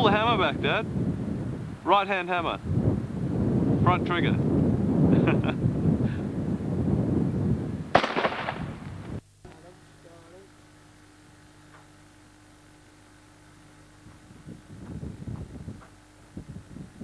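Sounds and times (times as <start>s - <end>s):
wind rumble on microphone: 0.0s - 9.2s, 13.9s - 17.0s
faint steady hum: 0.0s - 17.0s
shotgun shot: 7.9s - 8.8s.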